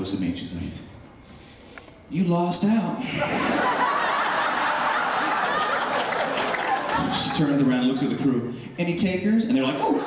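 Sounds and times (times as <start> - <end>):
audience laughing: 3.1 - 8.2.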